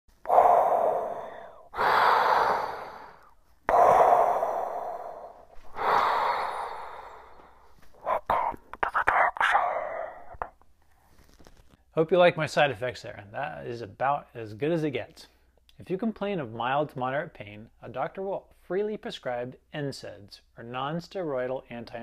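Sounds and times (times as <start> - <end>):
man breathing heavily into hands: 0.2 - 8.0
short choppy breath puffs: 0.2 - 10.6.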